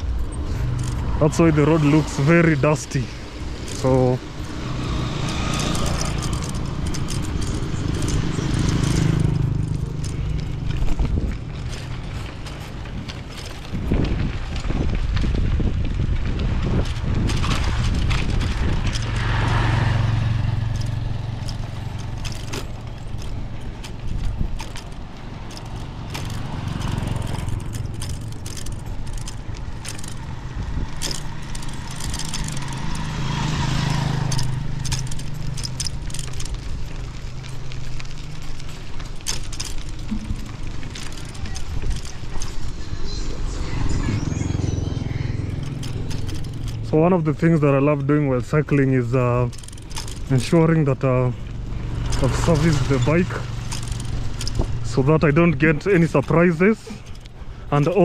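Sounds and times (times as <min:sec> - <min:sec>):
wind rushing over microphone: 0:00.0 - 0:22.0, 0:22.7 - 0:35.4
bicycle clicks and rattles: 0:00.0 - 0:58.0
small motorcycles passing: 0:00.0 - 0:58.0
tyres rolling on gravel: 0:00.0 - 0:58.0.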